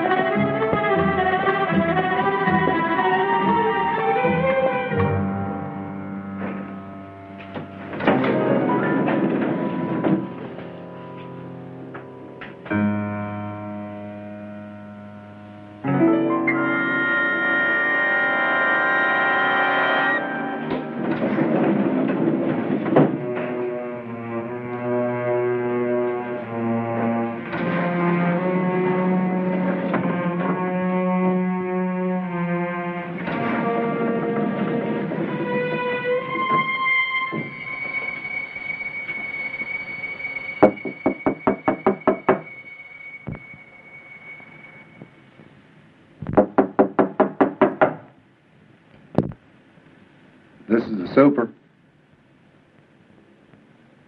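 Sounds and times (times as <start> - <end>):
rapid sharp knocking strikes: 40.6 - 42.5, 46.3 - 48.1.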